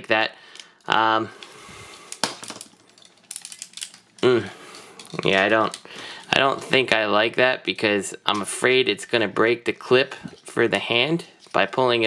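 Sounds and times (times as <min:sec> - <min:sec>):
plastic toy parts clicking: 0:02.1 - 0:04.3.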